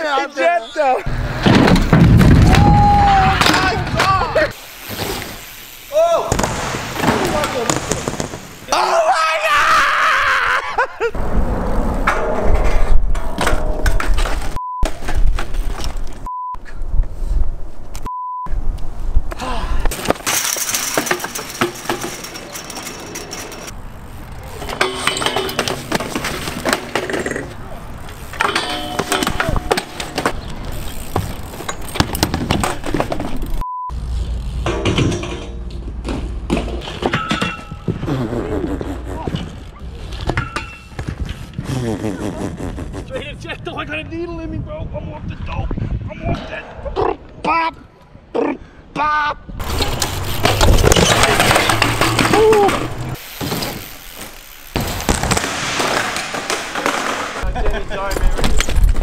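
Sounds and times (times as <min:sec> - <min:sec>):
bikes crashing onto ramps: 0:01.1 - 0:08.8, 0:19.9 - 0:38.2, 0:49.6 - 0:59.0
people shouting and yelling: 0:02.4 - 0:04.6, 0:05.9 - 0:06.5, 0:08.7 - 0:11.0, 0:52.2 - 0:53.0
short steady beep: 0:16.2 - 0:16.6, 0:18.0 - 0:18.5, 0:33.6 - 0:34.0.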